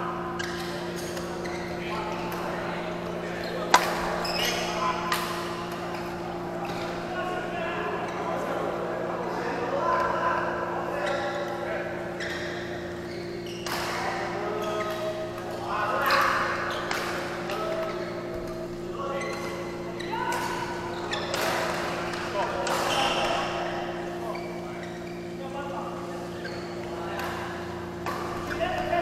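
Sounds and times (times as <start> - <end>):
rackets hitting shuttlecock: 3.5 - 6.8, 20.3 - 23.4.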